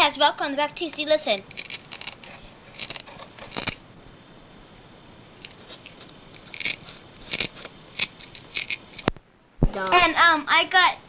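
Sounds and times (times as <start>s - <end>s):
cassette tape hiss: 0.0s - 11.0s.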